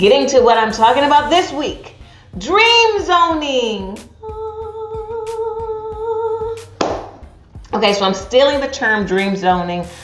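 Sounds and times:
woman humming: 4.0s - 6.7s.

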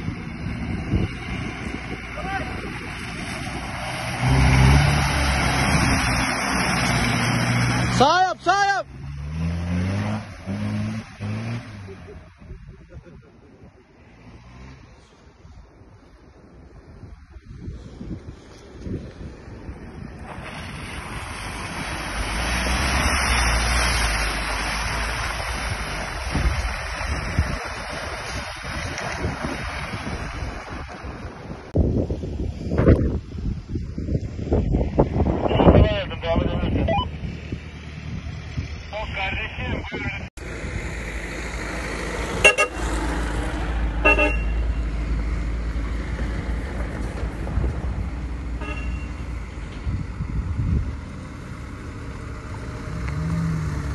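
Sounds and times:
vehicle driving through mud: 0.0s - 15.4s, 17.6s - 53.9s
engine rumble: 0.0s - 53.9s
voices: 7.9s - 8.9s, 35.4s - 37.2s, 38.8s - 40.3s
car horn toots: 42.4s - 42.9s, 44.0s - 44.7s, 48.6s - 49.2s.

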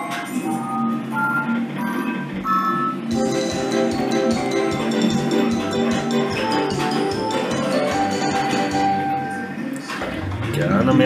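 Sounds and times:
slot machine electronic jingles: 0.0s - 9.6s.

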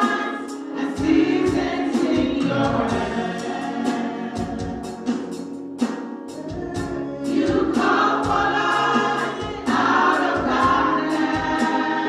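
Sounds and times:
women singing gospel: 0.0s - 5.4s, 6.5s - 12.0s
steady beat: 0.0s - 12.0s.

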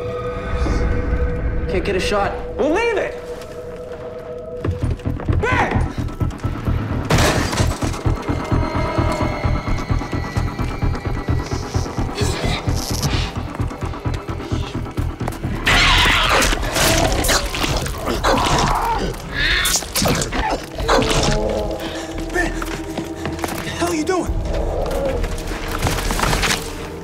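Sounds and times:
tense action music: 0.0s - 27.0s.

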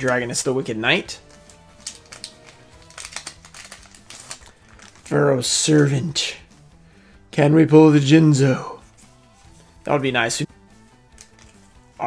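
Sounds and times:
cards flicking against each other: 1.2s - 5.0s, 10.8s - 11.9s
foil wrapper crinkling: 1.2s - 5.8s, 11.1s - 11.7s.

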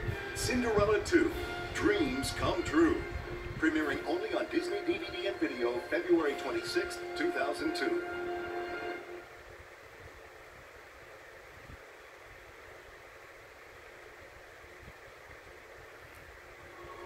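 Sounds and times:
tape hiss through tv speaker: 0.0s - 17.0s.

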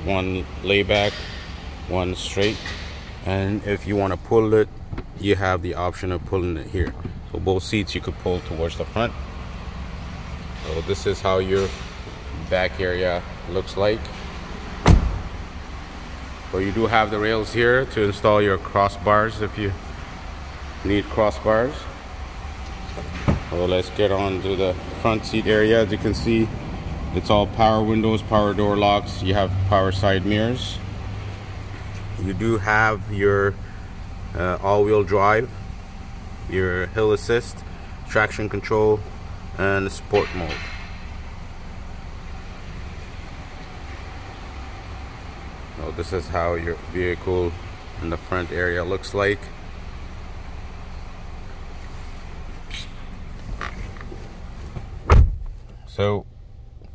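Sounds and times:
car cabin rumble and hiss: 6.4s - 29.4s, 46.6s - 56.9s
car door slamming shut: 14.8s - 15.4s, 23.0s - 23.5s, 55.0s - 55.6s.

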